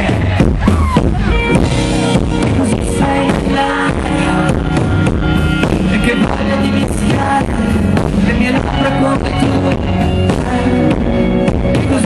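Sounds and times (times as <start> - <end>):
pop-rock band playing loudly: 0.0 - 12.0.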